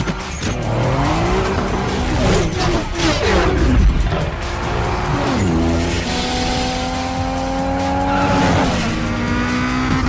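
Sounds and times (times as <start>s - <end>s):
race car engines revving: 0.0s - 10.0s.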